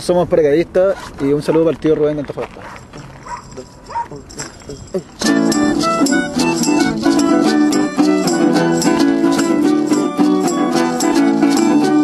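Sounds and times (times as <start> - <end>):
talking: 0.9 - 8.0
music: 5.2 - 12.0.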